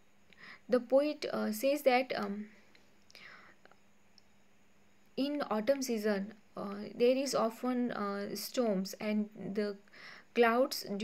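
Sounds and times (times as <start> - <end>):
faint intake of breath: 0.3 - 0.7, 3.1 - 3.7, 9.9 - 10.3.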